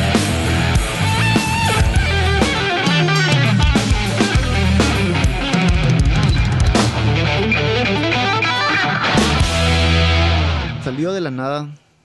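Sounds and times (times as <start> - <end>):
bass guitar: 0.0 - 11.0
electric guitar lead line: 0.0 - 11.1
drum hits: 0.3 - 7.4.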